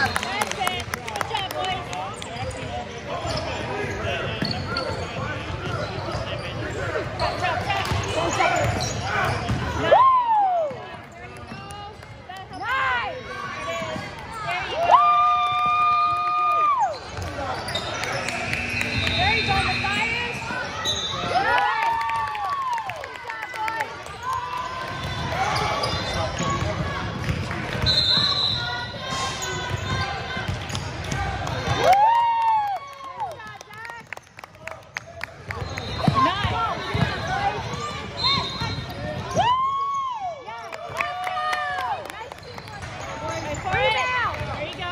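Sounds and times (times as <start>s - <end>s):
sneakers squeaking on floor: 2.2s - 9.9s, 11.1s - 14.7s, 16.9s - 21.5s, 24.9s - 31.8s, 35.5s - 40.9s, 42.4s - 44.6s
spectators' voices: 16.6s - 32.1s.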